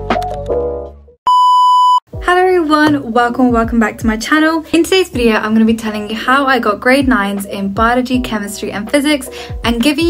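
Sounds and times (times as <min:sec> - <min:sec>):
high test-tone beep: 0:01.3 - 0:02.0.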